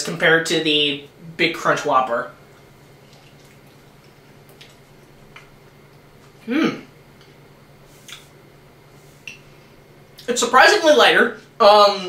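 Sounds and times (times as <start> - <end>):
steady low hum: 0.0 - 12.0
wet chewing mouth clicks: 2.5 - 6.4, 8.0 - 8.4.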